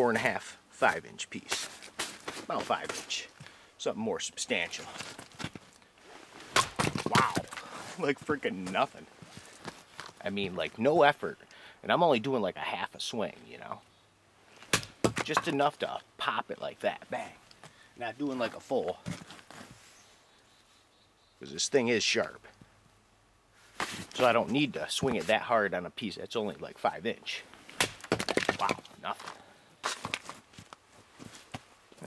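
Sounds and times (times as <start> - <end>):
axe splitting log crack: 6.5 - 7.6, 14.7 - 15.6, 27.7 - 30.4.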